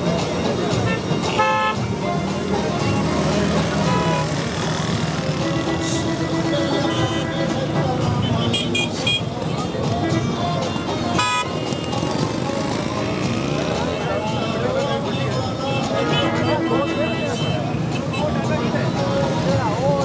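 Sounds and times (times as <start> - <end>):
cars moving slowly: 0.0 - 20.0
crowd chatter: 0.0 - 20.0
car horns tooting: 0.5 - 2.0, 2.8 - 4.5, 5.3 - 12.1, 13.9 - 18.5.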